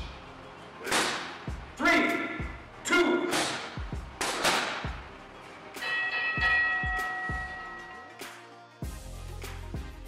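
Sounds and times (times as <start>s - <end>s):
background music with steady beat: 0.0s - 10.0s
bell-like ringing tone: 5.8s - 8.2s.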